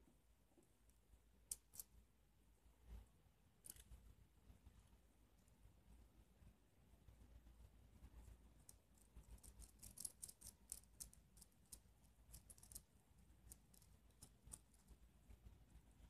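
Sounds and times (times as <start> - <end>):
small metal clicks: 8.6 - 12.9.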